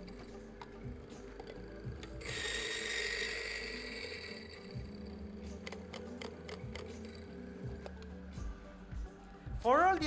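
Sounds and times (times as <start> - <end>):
electric coffee grinder running: 1.4 - 8.0.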